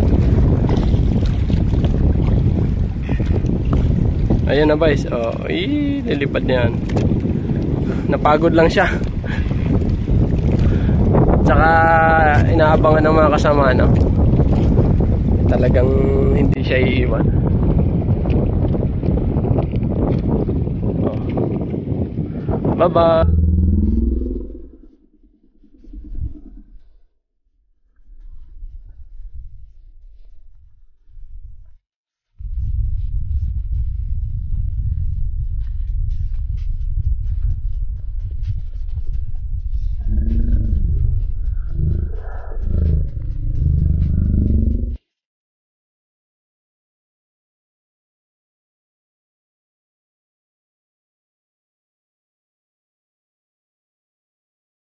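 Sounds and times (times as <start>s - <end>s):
boat engine rumbling: 0.0s - 16.6s, 23.0s - 27.1s, 39.4s - 45.0s
wind buffeting microphone: 0.0s - 27.0s, 27.9s - 31.8s, 32.4s - 45.0s.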